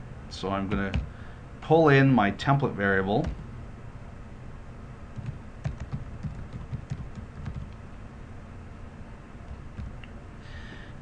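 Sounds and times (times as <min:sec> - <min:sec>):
faint low hum: 0:00.0 - 0:11.0
typing on computer keyboard: 0:05.2 - 0:07.8.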